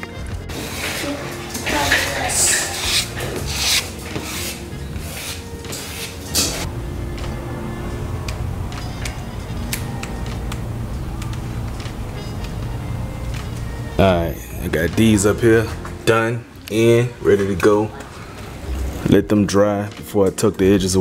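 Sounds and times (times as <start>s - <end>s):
background music with bass line: 0.0s - 16.2s
squeegee scraping on vinyl wrap: 0.5s - 6.7s.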